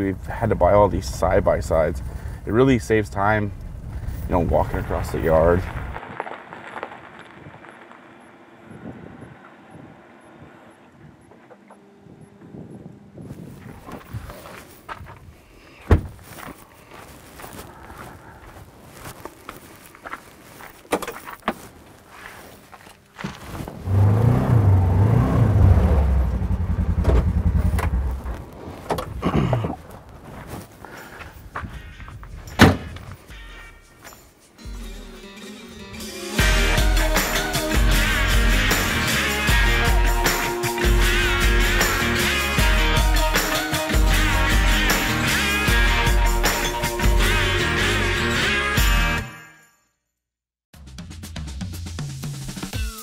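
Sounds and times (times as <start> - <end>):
side-by-side vehicle engine running: 7.6 - 14.7, 23.4 - 29.2
door slamming: 15.9 - 16.2, 32.5 - 33.2.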